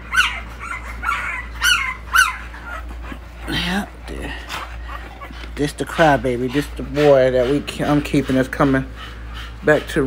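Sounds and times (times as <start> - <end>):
puppies whimpering and squealing: 0.0 - 10.0.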